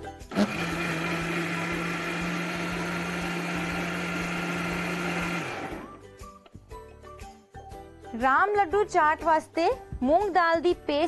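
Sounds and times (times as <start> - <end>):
mixer grinder running: 0.3 - 6.0.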